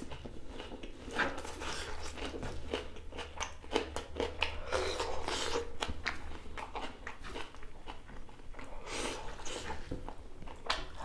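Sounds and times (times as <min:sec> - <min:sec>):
person chewing food: 0:00.0 - 0:11.0.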